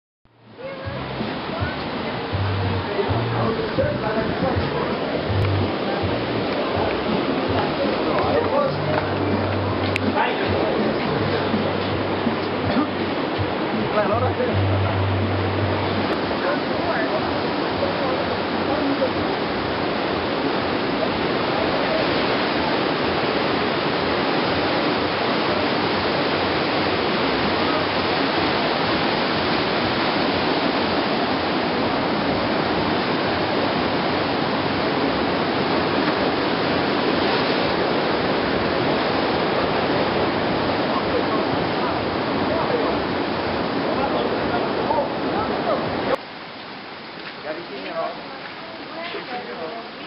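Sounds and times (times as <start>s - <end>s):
ocean surf breaking on rocks: 0.5s - 50.0s.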